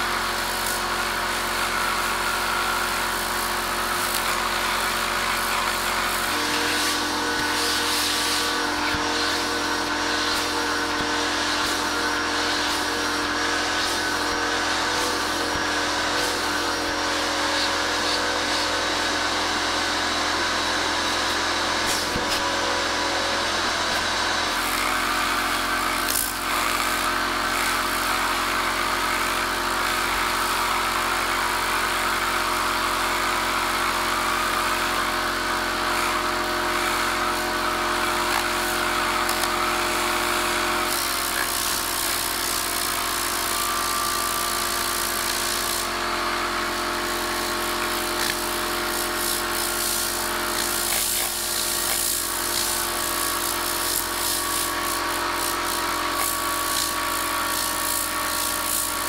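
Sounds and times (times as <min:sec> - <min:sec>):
compressed air hissing: 0:05.4 - 0:18.8.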